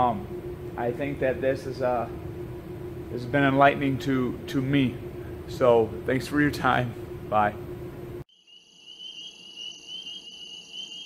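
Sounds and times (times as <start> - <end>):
insects trilling: 8.3 - 11.0.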